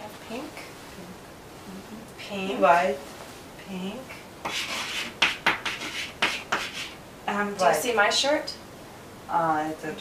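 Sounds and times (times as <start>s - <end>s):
chalk scratching on blackboard: 4.4s - 7.0s.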